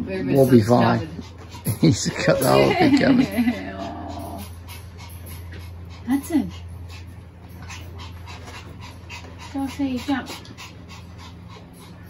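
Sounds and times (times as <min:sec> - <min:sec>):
steady low hum: 0:00.0 - 0:12.0
small dog panting: 0:00.1 - 0:12.0.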